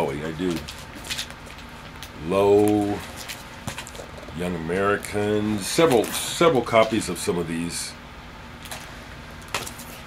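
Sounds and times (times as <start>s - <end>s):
plastic record sleeve rustling: 0.0s - 7.1s
furnace humming: 0.0s - 10.0s.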